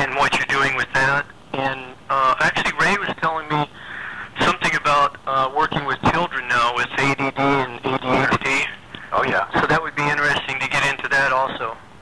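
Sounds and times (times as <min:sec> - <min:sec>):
man speaking: 0:00.0 - 0:11.8.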